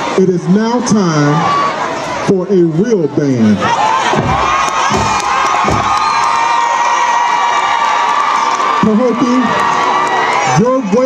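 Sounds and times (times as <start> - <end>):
crowd cheering and screaming: 0.0 - 11.0
low thumps: 4.0 - 6.4.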